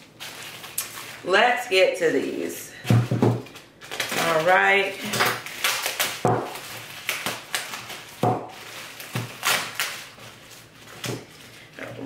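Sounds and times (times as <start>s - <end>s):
package crackling and knocking: 2.9s - 10.2s.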